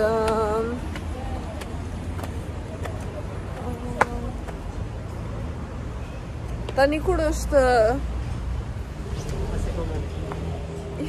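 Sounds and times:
faint voices: 0.0s - 5.8s
city street traffic rumble: 0.0s - 11.0s.

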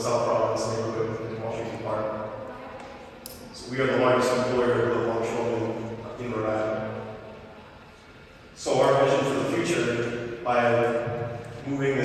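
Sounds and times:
man speaking into a microphone: 0.0s - 2.4s, 3.4s - 7.2s, 8.6s - 12.0s.

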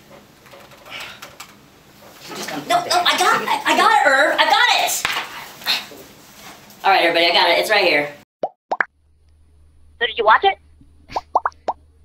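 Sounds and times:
cartoon pop sound effects: 8.4s - 8.9s, 11.1s - 11.8s
faint low hum: 9.0s - 12.0s.

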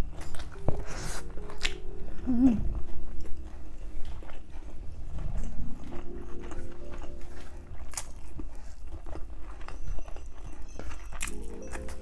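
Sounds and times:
close-miked chewing: 0.0s - 12.0s.

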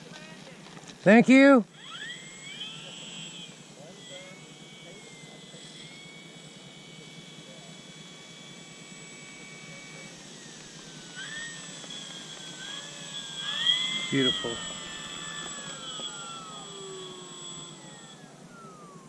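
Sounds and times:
electric motor and propeller whine: 0.0s - 19.0s.

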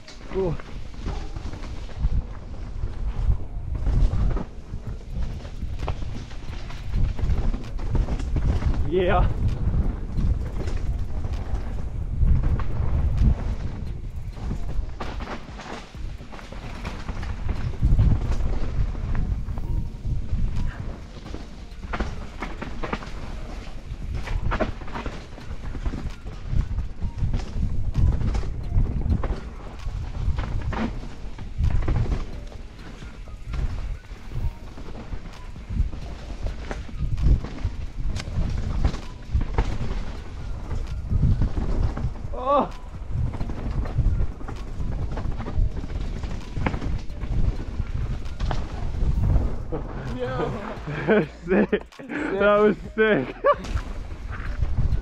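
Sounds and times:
bike knocks and rattles: 0.0s - 50.2s
bike tyres rumbling on dirt: 0.0s - 55.0s.

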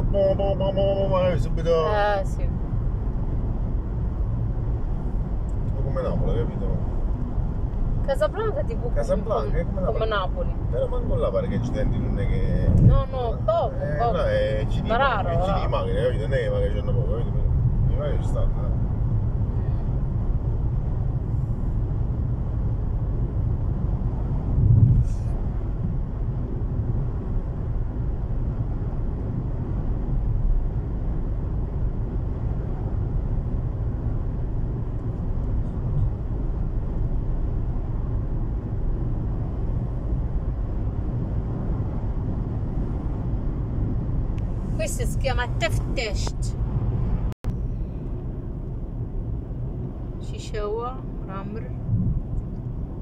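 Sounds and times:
car engine and tyres rumbling: 0.0s - 53.0s.

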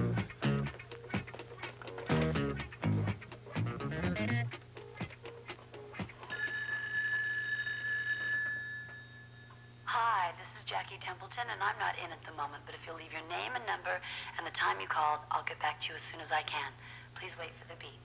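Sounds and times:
telephone ringing: 6.2s - 10.3s.

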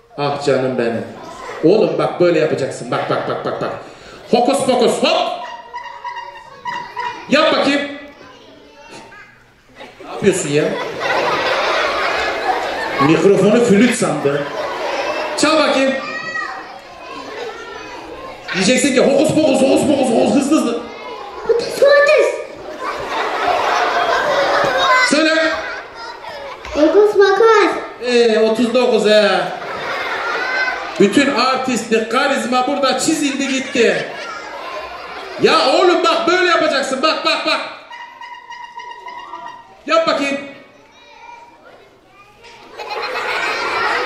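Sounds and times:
children's voices chattering: 0.0s - 44.0s
person speaking: 31.0s - 34.2s
squeeze whistle tone: 37.9s - 39.8s.

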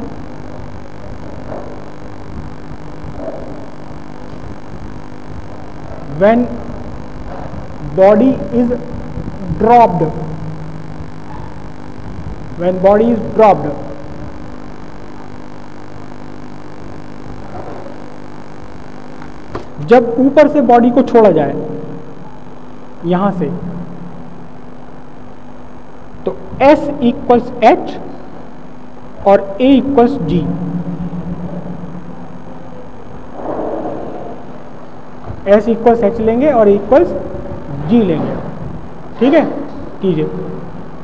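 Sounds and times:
background hiss: 0.0s - 30.5s
electrical hum: 0.0s - 41.0s.

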